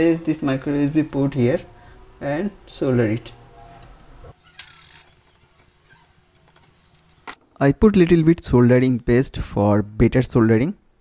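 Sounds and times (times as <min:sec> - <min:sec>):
small clicks and scrapes: 0:03.8 - 0:07.4.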